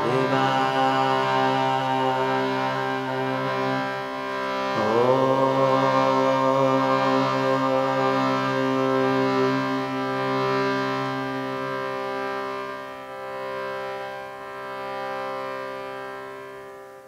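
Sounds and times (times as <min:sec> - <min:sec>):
shruti box drone chord: 0:00.0 - 0:17.0.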